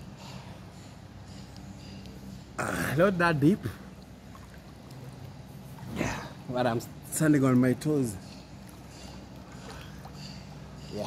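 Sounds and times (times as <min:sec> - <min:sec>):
pool water lapping: 0:00.0 - 0:11.0.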